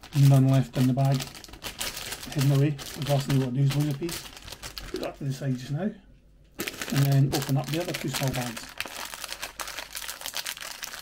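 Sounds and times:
plastic bag crinkling: 0.0 - 5.7, 6.6 - 11.0.

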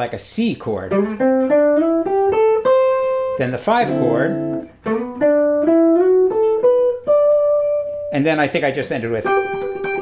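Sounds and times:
clean electric guitar notes: 0.9 - 8.1, 9.2 - 10.0.

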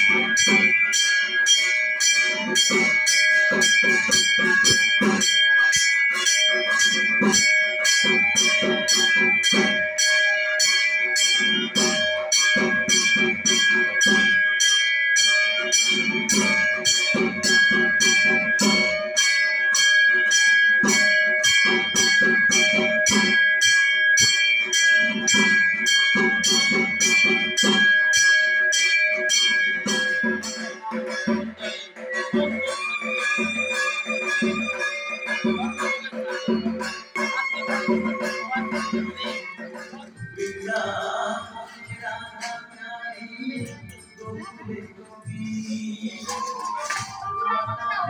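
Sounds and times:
music: 0.0 - 48.0
ritual bell ringing: 0.0 - 48.0.

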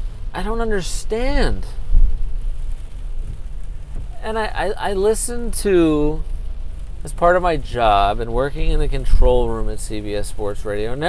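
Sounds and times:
car cabin rumble: 0.0 - 11.0
rain hissing on car: 0.0 - 11.0
low thump: 1.8 - 4.2.

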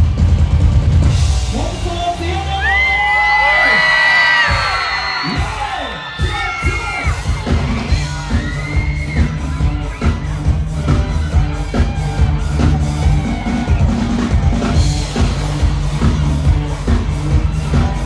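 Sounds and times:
live band music: 0.0 - 18.0
voices whooping and yelling: 2.5 - 14.3.

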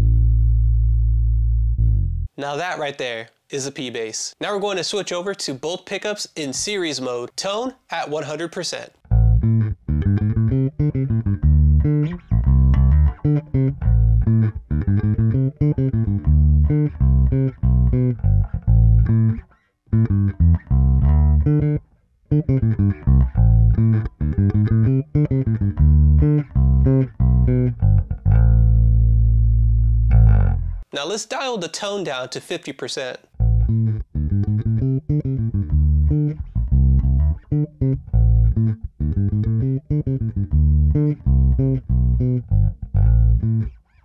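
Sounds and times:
electric bass plucked notes: 0.0 - 2.4, 9.1 - 30.8, 33.4 - 43.8.

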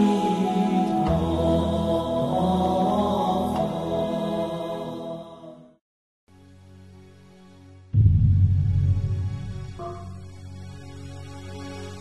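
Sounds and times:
soft instrumental music: 0.0 - 5.3
slow devotional chant: 0.0 - 5.8
low tone: 8.0 - 10.6.

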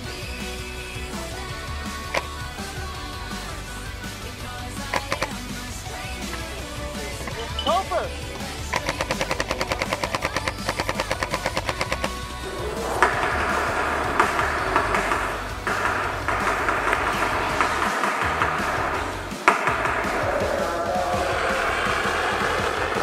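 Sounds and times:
music: 0.0 - 23.0
paintball marker firing: 13.0 - 21.4.

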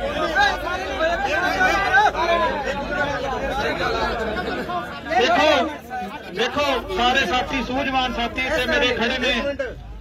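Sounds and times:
crowd of men talking: 0.0 - 10.0.

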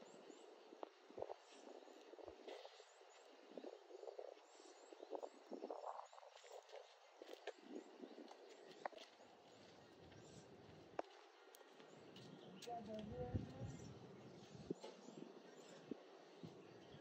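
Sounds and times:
soft rustling and scraping: 0.8 - 13.6.

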